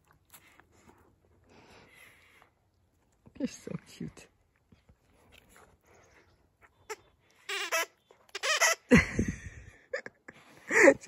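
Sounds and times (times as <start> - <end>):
dog toy squeaking: 6.9 - 8.9.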